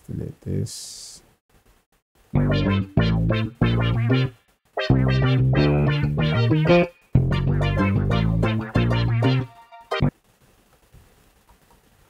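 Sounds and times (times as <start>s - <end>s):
sampled music loop chunks: 2.4s - 10.1s.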